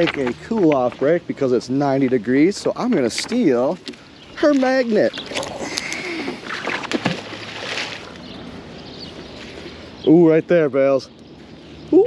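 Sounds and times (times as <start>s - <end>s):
magnet splashing into river: 5.3s - 8.2s.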